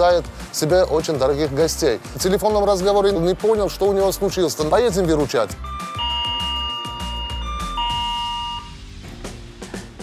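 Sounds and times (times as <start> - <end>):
background music: 0.0 - 10.0
two-tone doorbell chime: 5.6 - 8.8.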